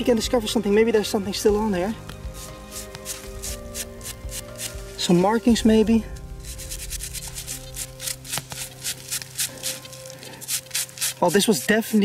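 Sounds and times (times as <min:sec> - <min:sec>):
background music: 0:00.0 - 0:12.0
brush scrubbing metal blade: 0:02.3 - 0:05.4, 0:06.4 - 0:12.0.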